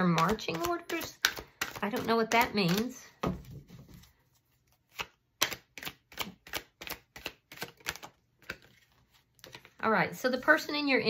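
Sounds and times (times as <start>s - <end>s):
cards being shuffled: 0.1s - 9.8s.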